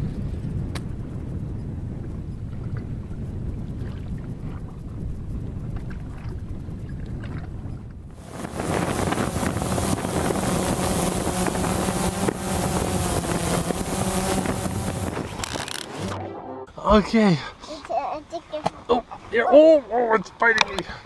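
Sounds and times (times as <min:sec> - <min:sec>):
wind rumbling on microphone: 0:00.0 - 0:16.2
drone propeller hum: 0:08.1 - 0:16.8.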